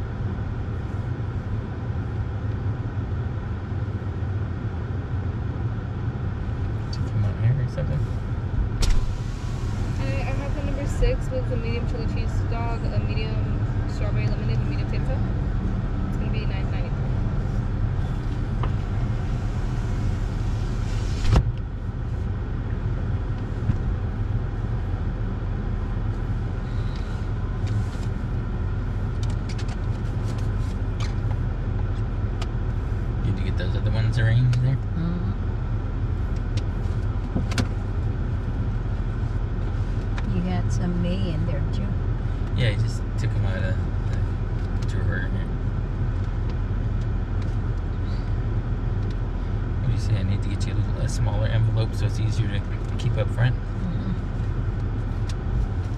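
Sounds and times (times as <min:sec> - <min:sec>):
car engine idling: 0:00.0 - 0:55.9.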